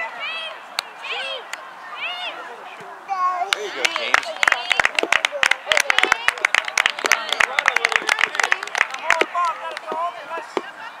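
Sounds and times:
voices calling out: 0.0s - 11.0s
spectators applauding: 3.5s - 10.6s.

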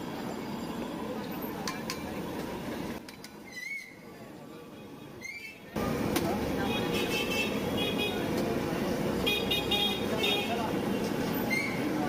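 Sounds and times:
traffic: 0.0s - 12.0s
voices: 4.0s - 12.0s
vehicle horn beeping: 6.6s - 8.2s, 9.2s - 10.6s.

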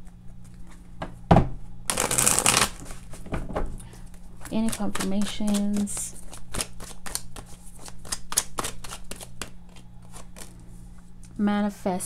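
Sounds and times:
cards being shuffled: 1.9s - 3.3s, 4.0s - 11.0s.

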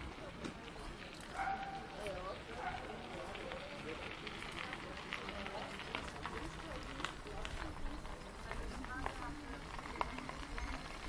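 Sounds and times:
footsteps on a path: 0.0s - 11.0s.

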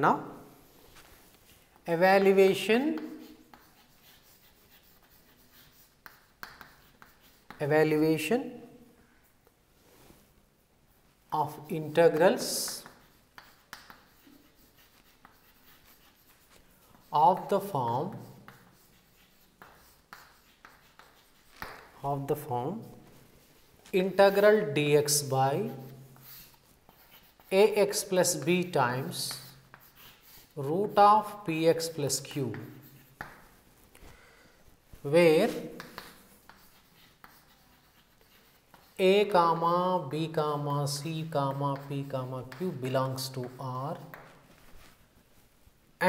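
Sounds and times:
chalk scratching on blackboard: 0.6s - 8.0s, 11.4s - 33.8s, 35.0s - 45.0s
chalk tapping: 1.8s - 8.0s, 11.4s - 33.7s, 34.9s - 45.0s.

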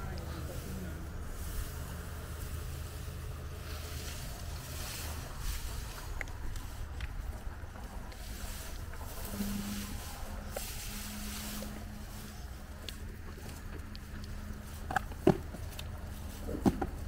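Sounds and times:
wind buffeting microphone: 0.0s - 14.7s.

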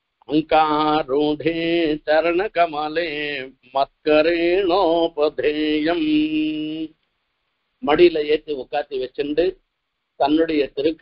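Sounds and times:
man chanting a verse: 0.3s - 6.9s, 7.8s - 9.6s, 10.2s - 11.0s.

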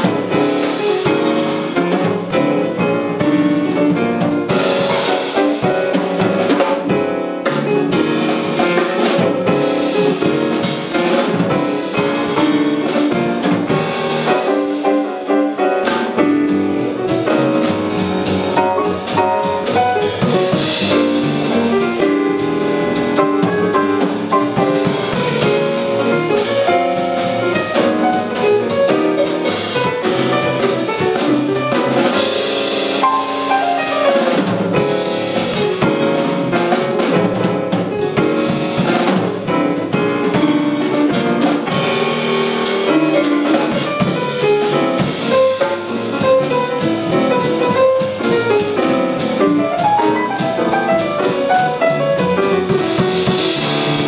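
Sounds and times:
drum kit with cymbals: 0.0s - 54.0s
grand piano: 0.0s - 54.0s
upright bass: 0.0s - 54.0s.

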